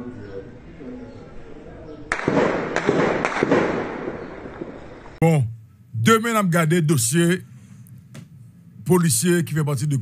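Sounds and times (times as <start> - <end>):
sharp bangs with echo: 2.1 - 4.9.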